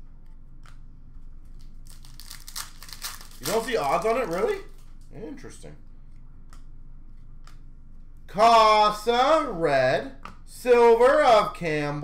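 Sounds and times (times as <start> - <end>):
room hum: 0.0 - 12.0.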